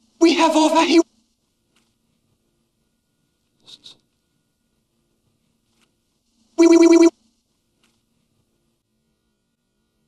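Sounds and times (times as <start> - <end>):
pulsing electronic telephone ring: 6.6 - 7.1.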